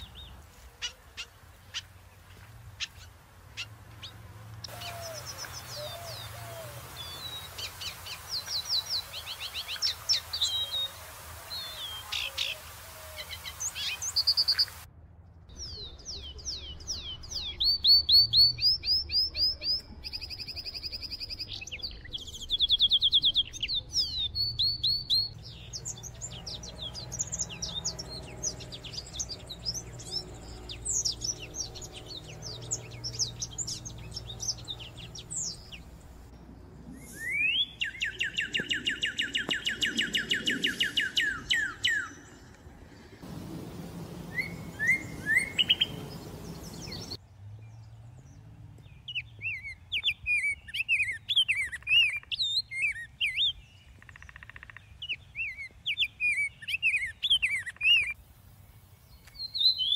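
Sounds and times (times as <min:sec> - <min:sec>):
songbirds singing: 0:00.0 - 0:14.9, 0:15.5 - 0:59.9.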